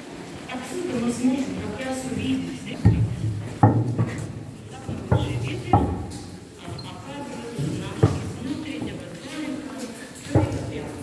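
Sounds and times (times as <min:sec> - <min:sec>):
voices murmuring: 0:00.0 - 0:11.0
footsteps on stone: 0:00.9 - 0:11.0.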